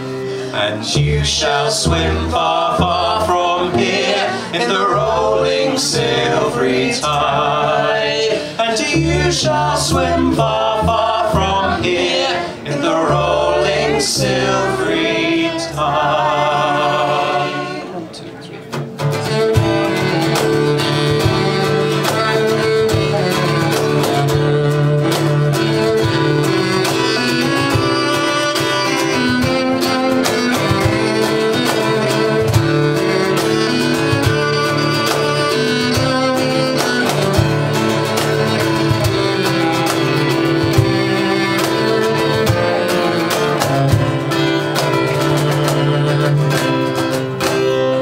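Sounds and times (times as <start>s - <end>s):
voices singing in harmony: 0.0s - 18.2s
bowed cello low notes: 0.0s - 47.1s
strummed acoustic guitar: 0.0s - 48.0s.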